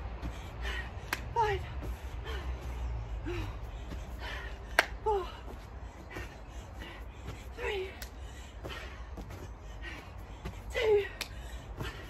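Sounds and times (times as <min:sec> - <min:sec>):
woman breathing hard: 0:00.0 - 0:12.0.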